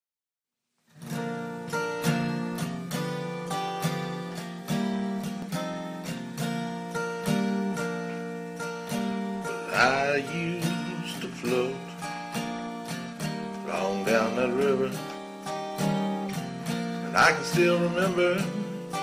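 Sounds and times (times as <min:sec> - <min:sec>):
acoustic guitar chords: 0:00.9 - 0:19.0
person singing: 0:09.4 - 0:12.4, 0:13.5 - 0:19.0.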